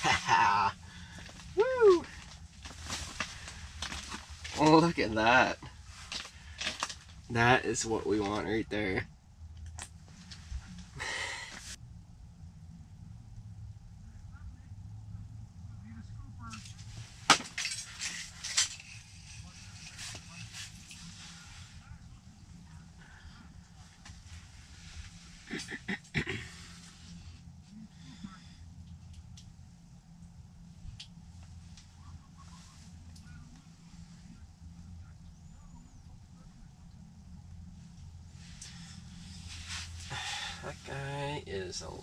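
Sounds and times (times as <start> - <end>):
man whooping excitedly: 0.0 - 0.8, 1.5 - 2.2
steady low hum: 0.0 - 42.0.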